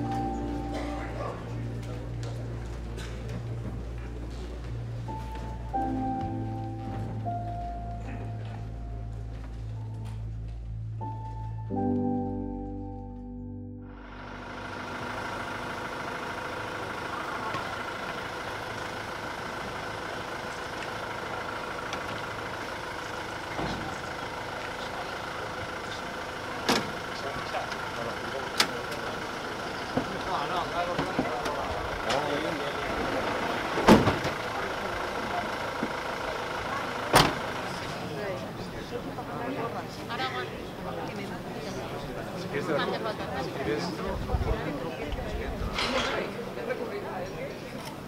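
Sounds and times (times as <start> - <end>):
crowd murmuring: 0.0 - 12.9, 14.0 - 48.0
music: 0.0 - 14.5
engine hum: 0.0 - 48.0.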